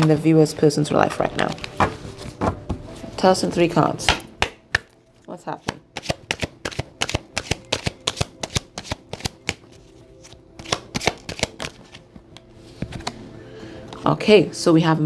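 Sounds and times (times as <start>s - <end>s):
faint background music: 0.0s - 15.0s
cards being shuffled: 1.4s - 2.6s, 5.6s - 13.2s.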